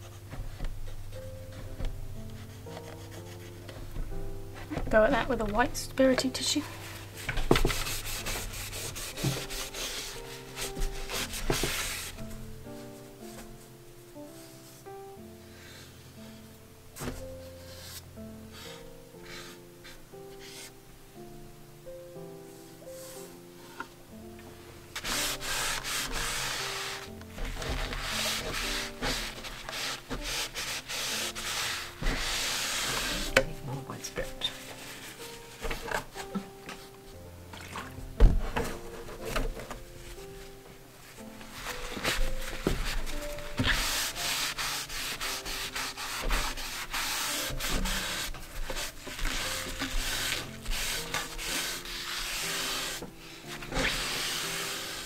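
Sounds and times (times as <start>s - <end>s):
soft background music: 0.0s - 55.0s
scratchy rubbing on wood: 7.5s - 12.2s, 25.0s - 33.5s, 41.5s - 53.0s, 53.6s - 55.0s.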